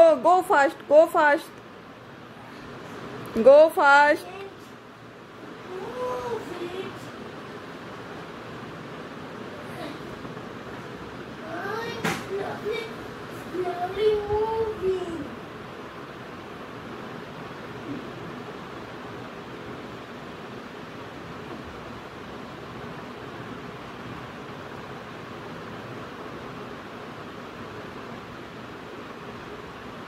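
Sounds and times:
room noise hiss: 0.0 - 30.0.

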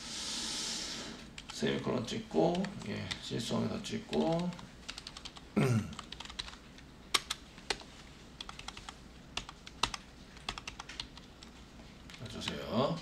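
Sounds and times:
keyboard typing: 4.1 - 11.5
short vocal sound: 5.6 - 6.0.

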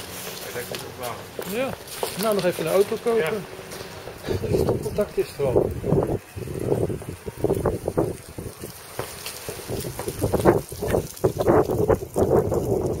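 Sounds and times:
wind buffeting microphone: 1.6 - 13.0.

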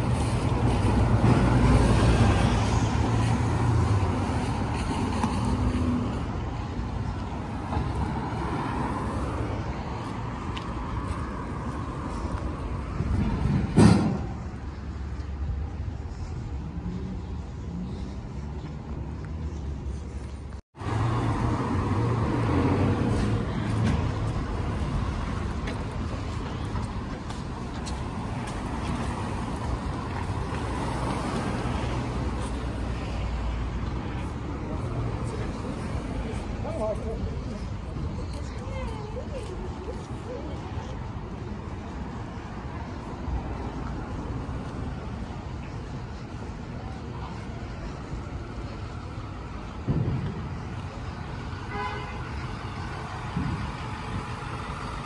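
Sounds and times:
cars and buses passing: 0.0 - 55.0.

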